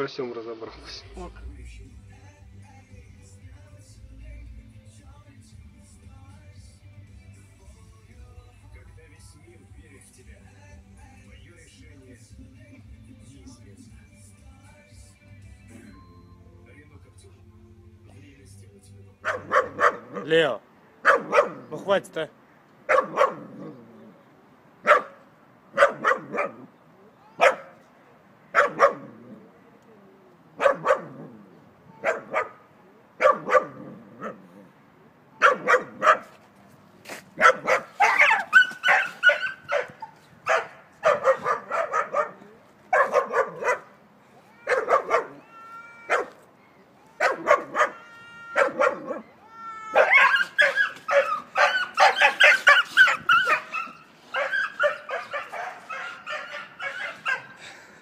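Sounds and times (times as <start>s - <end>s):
small dog barking: 19.2s - 20.3s, 21.0s - 21.7s, 22.9s - 23.8s, 24.8s - 26.7s, 27.3s - 27.8s, 28.5s - 29.4s, 30.6s - 31.3s, 31.9s - 34.5s, 35.4s - 36.4s, 37.4s - 43.9s, 44.6s - 45.4s, 46.1s - 46.4s, 47.2s - 49.3s, 49.9s - 57.6s
dog yelps and whines: 21.1s - 21.7s, 25.8s - 27.9s, 28.5s - 32.6s, 33.2s - 34.7s, 35.3s - 36.3s, 37.4s - 57.6s.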